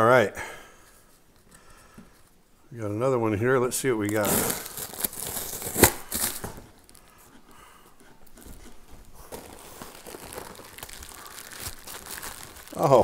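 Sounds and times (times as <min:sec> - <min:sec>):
packing tape ripping: 0:04.0 - 0:07.0, 0:09.3 - 0:13.0
cardboard rustling: 0:04.0 - 0:07.1, 0:08.2 - 0:13.0
bubble wrap crinkling: 0:04.0 - 0:07.2, 0:08.2 - 0:13.0.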